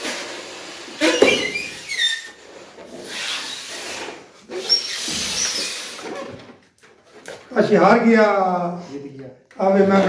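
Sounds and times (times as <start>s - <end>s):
squeak of stretched rubber: 0.0s - 7.5s.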